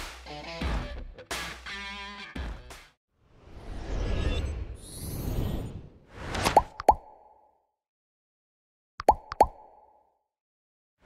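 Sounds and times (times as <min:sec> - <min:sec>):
whoosh: 0:03.3 - 0:06.6.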